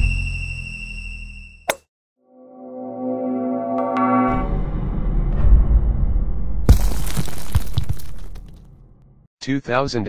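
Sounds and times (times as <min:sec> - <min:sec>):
low rumble: 0:04.3 - 0:08.6.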